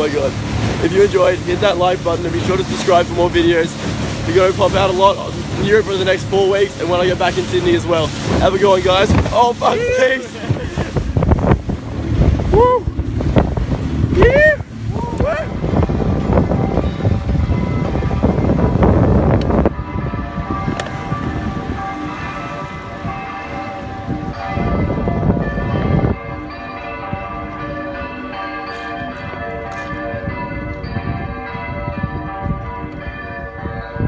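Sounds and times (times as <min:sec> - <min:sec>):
wind rumble on microphone: 0:00.0 - 0:34.0
church bells pealing: 0:15.4 - 0:34.0.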